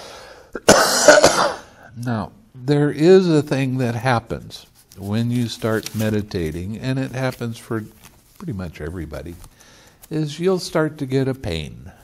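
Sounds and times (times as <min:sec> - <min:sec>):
man breathing in: 0:00.0 - 0:00.6, 0:09.5 - 0:10.0
man coughing: 0:00.6 - 0:01.8.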